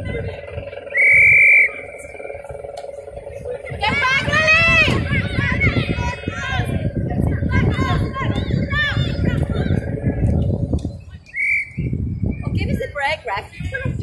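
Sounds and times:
low rumbling noise: 0:00.0 - 0:14.0
players shouting: 0:03.7 - 0:10.3.

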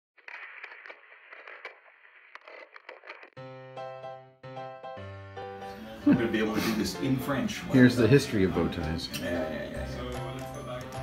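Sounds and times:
clicks and pops: 0:00.2 - 0:03.4.

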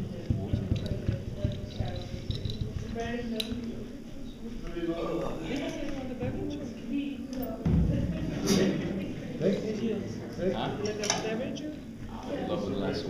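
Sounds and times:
indistinct talking: 0:00.0 - 0:13.0
low thump: 0:07.6 - 0:08.3.

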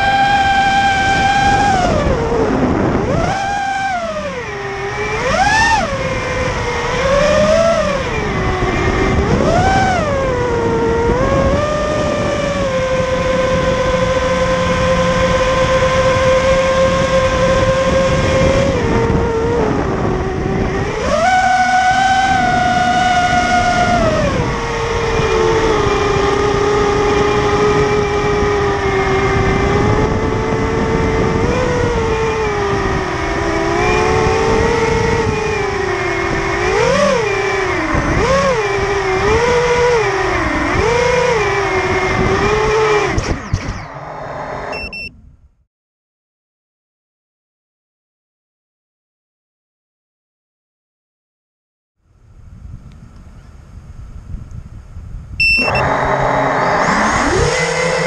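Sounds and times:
quadcopter motors whining: 0:00.0 - 0:45.1, 0:52.8 - 0:58.0.

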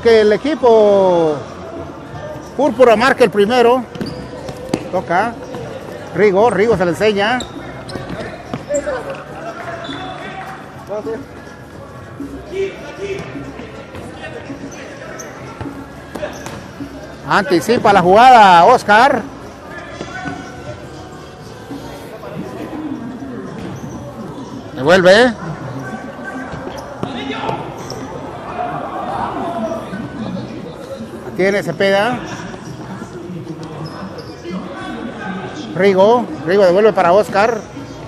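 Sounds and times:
players' voices echoing: 0:00.0 - 0:38.0
shoes squeaking: 0:01.4 - 0:38.0
players calling out: 0:25.3 - 0:35.8.

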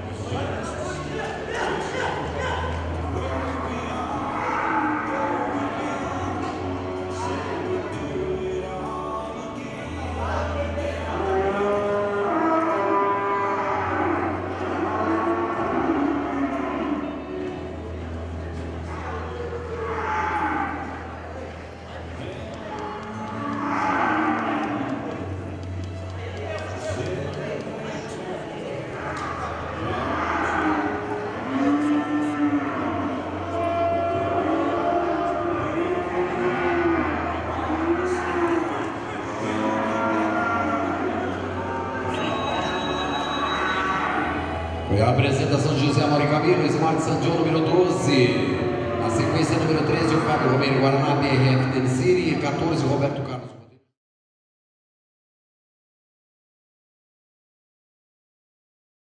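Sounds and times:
calves mooing: 0:04.2 - 0:05.6, 0:11.1 - 0:17.2, 0:22.7 - 0:25.1, 0:29.0 - 0:44.7.

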